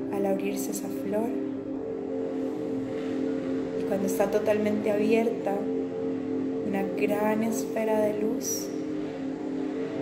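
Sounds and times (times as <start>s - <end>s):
soft ambient meditation music: 0.0s - 10.0s
woman speaking: 0.1s - 1.4s, 3.8s - 5.7s, 6.6s - 8.8s.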